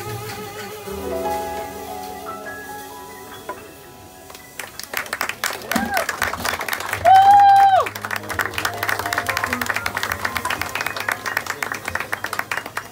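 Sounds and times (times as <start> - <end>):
audience clapping: 4.2 - 12.9.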